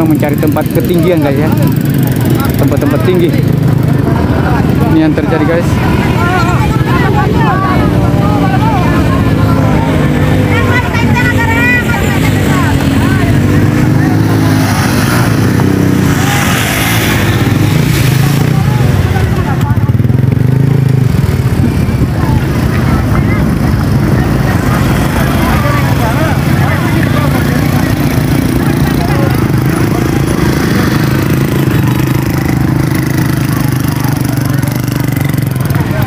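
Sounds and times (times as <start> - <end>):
crowd chatter: 0.0 - 36.0
motor scooter engines running: 0.0 - 36.0.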